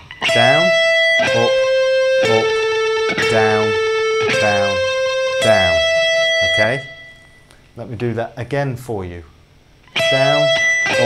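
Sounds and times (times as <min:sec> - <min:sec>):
electric guitar picking notes: 0:00.0 - 0:07.6, 0:09.8 - 0:11.0.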